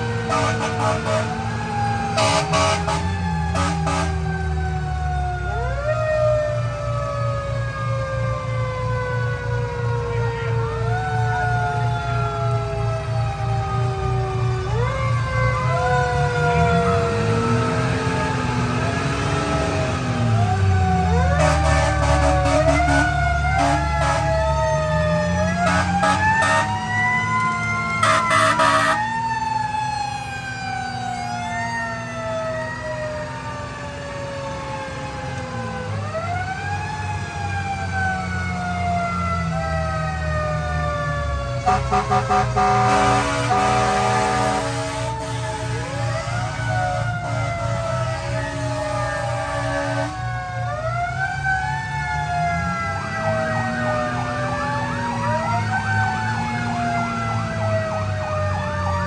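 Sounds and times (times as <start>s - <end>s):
mechanical siren wailing: 0.0s - 59.0s
other sirens gliding: 0.0s - 59.0s
horn blasts: 0.3s - 1.4s, 2.2s - 4.2s, 21.3s - 24.4s, 25.6s - 26.8s, 28.0s - 29.0s, 41.6s - 50.3s.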